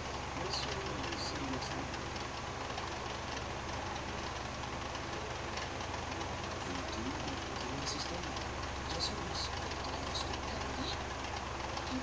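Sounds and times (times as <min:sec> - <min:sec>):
steady low hum and hiss: 0:00.0 - 0:12.0
faint voices: 0:00.4 - 0:02.0, 0:06.5 - 0:11.1, 0:11.8 - 0:12.0.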